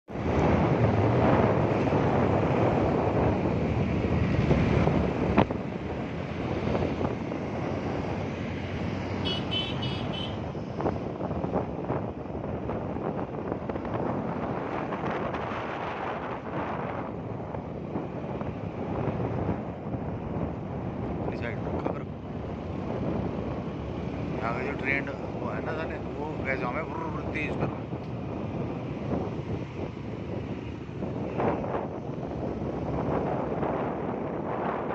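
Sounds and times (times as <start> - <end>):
moving vehicle running noise: 0.0 - 34.9
wind buffeting microphone: 0.1 - 34.9.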